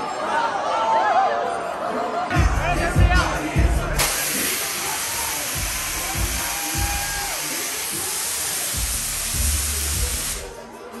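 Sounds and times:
club music with thudding bass: 2.3s - 4.5s, 5.1s - 10.6s
gas jets hissing: 4.0s - 10.6s.

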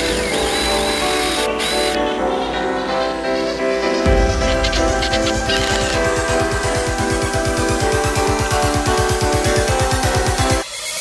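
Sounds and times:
cordless drill whining: 0.0s - 2.1s
background music: 0.0s - 10.8s.

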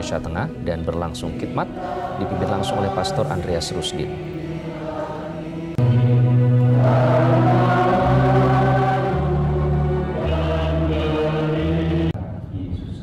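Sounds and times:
choir singing a slow hymn: 0.0s - 12.5s.

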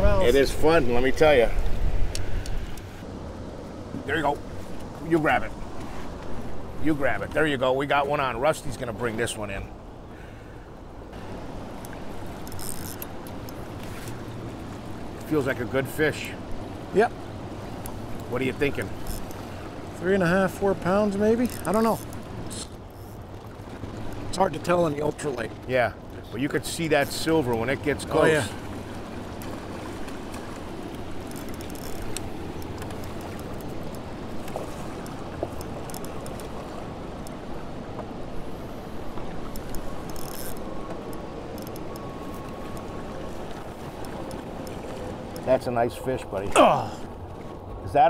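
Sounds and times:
boat motor rumbling: 0.0s - 48.0s
water noise: 0.0s - 48.0s
wind: 0.0s - 48.0s
faint ticks: 11.8s - 14.2s, 30.9s - 36.6s, 37.2s - 37.4s, 39.4s - 42.9s.

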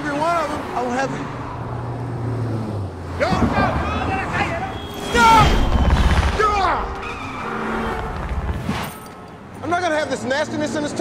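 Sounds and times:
traffic rumble in tunnel: 0.0s - 11.0s.

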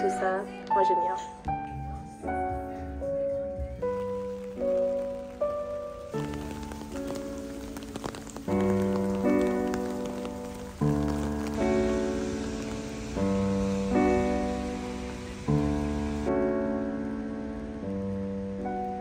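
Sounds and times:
rain patter: 0.0s - 19.0s
slow chord music: 0.0s - 19.0s.

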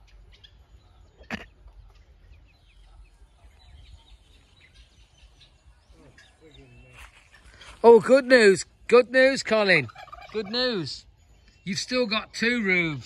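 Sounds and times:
chickens clucking: 0.0s - 7.8s, 9.5s - 11.2s.

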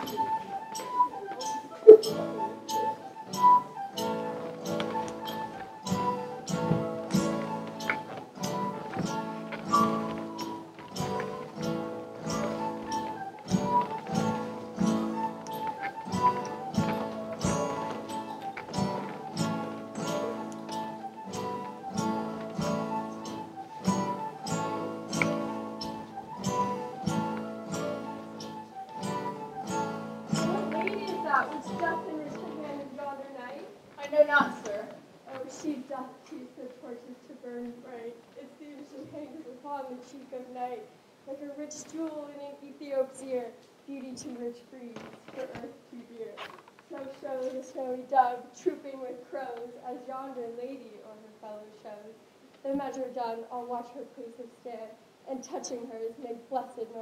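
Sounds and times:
recorder melody: 0.0s - 32.9s
acoustic guitar strumming: 0.0s - 33.1s.

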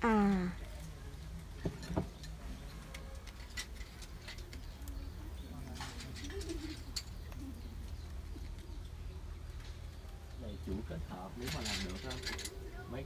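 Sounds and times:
dove cooing: 4.5s - 9.3s.

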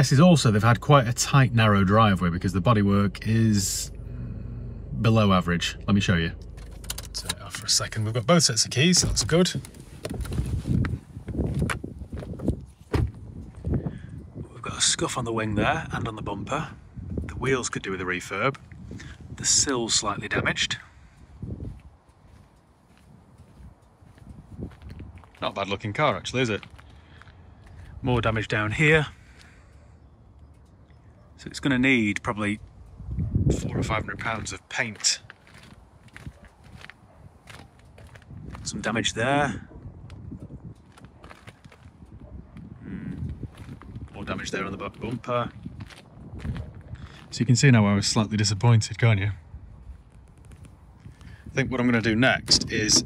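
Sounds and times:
low thumps: 1.2s - 13.6s, 52.4s - 53.0s
footsteps on tarmac: 8.9s - 13.8s, 21.5s - 28.0s, 34.2s - 39.0s, 40.1s - 47.5s
shuffling footsteps: 21.7s - 25.6s, 34.4s - 38.7s.

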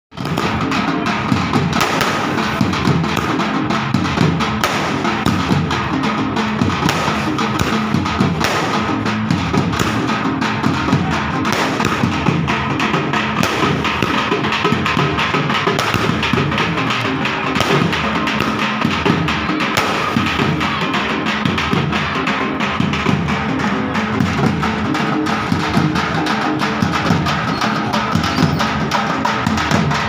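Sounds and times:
drums in fast rhythm: 0.1s - 30.0s.

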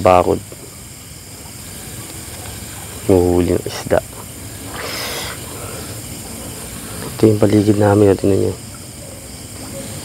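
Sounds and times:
outdoor background hiss: 0.0s - 10.0s.

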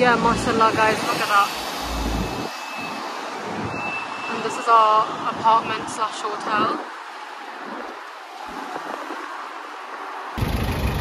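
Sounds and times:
outdoor background noise: 0.0s - 11.0s
minibus engine idling: 10.4s - 11.0s.

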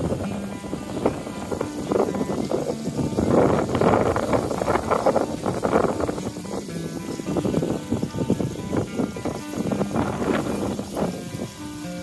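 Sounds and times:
faint music: 0.0s - 12.0s
water splashing down waterfall: 0.0s - 12.0s.

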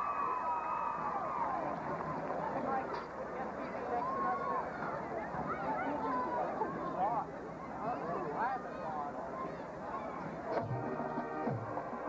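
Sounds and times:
high calls from crowd: 0.0s - 12.0s
stadium crowd noise: 0.0s - 12.0s
marching band playing chords: 10.6s - 12.0s.

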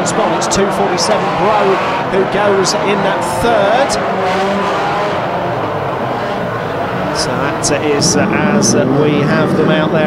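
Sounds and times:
racing car engines: 0.0s - 10.0s.

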